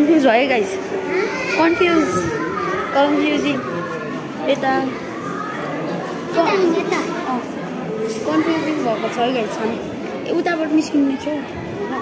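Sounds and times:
chatter of young people: 0.0s - 12.0s.

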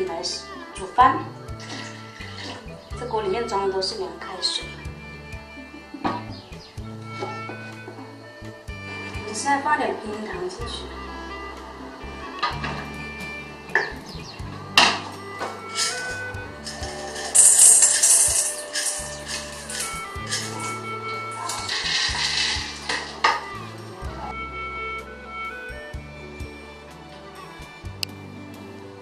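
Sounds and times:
background music: 0.0s - 29.0s
rock sugar rattling and clinking: 15.6s - 23.5s
metal spoon scooping from glass jar: 15.8s - 20.8s.

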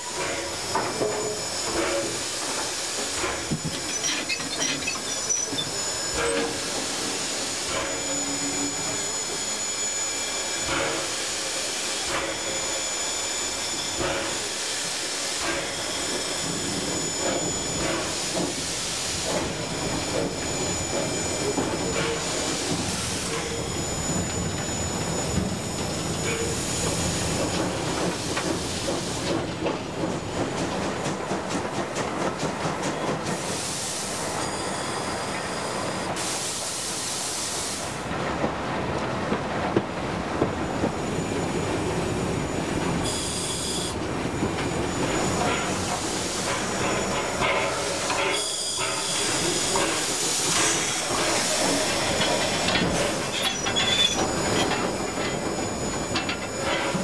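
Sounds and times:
steady hiss of steam: 0.0s - 57.0s.

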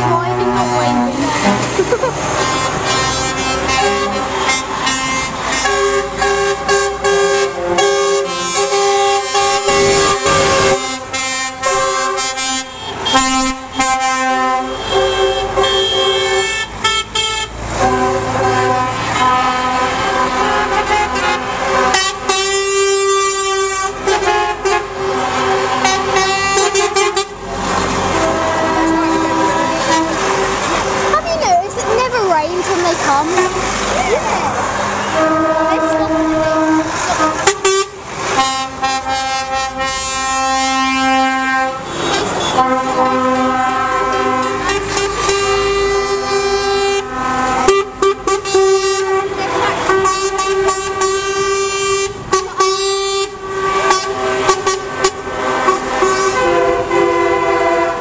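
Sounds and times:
lorry air horns: 0.0s - 31.3s, 32.7s - 33.9s, 35.0s - 58.0s
diesel engines running: 0.0s - 58.0s.

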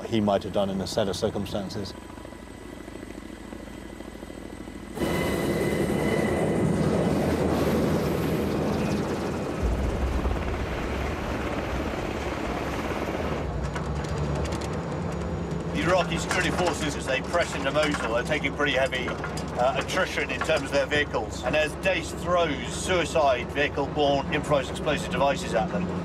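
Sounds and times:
helicopter rotors and turbines: 0.0s - 26.0s.

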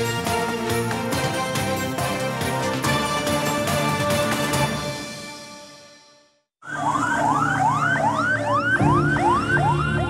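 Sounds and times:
music: 0.0s - 6.5s, 8.6s - 10.0s
ambulance siren whooping and wailing: 6.6s - 10.0s.

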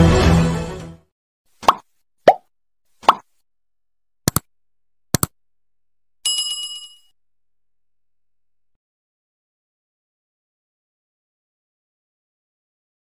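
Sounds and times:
bell ding: 6.2s - 7.2s.

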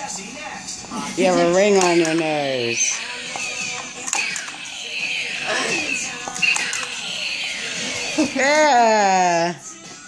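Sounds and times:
background music with vocals: 0.0s - 10.0s
faint talk: 5.4s - 6.2s.

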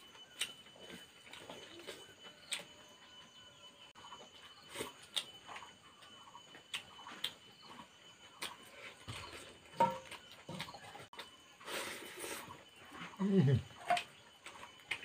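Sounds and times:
man chewing with mouth clicks: 0.0s - 2.8s, 4.3s - 15.0s.

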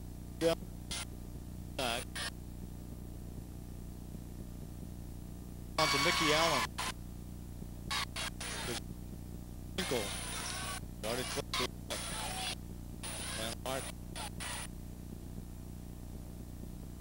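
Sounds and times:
steady low hum: 0.0s - 17.0s
man talking: 1.8s - 2.1s, 5.8s - 6.7s, 11.0s - 11.7s, 13.4s - 13.9s.

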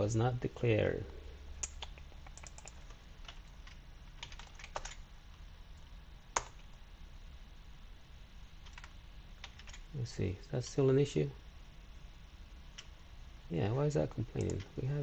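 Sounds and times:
faint low hum: 0.0s - 15.0s
computer keyboard typing: 1.6s - 5.0s, 6.3s - 6.8s, 8.6s - 9.9s, 14.3s - 14.7s.

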